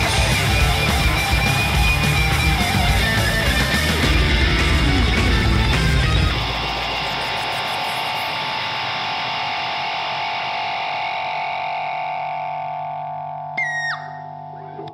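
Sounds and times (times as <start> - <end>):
distorted electric guitar chord ringing: 0.0 - 14.9
high tone dropping in pitch: 5.8 - 14.9.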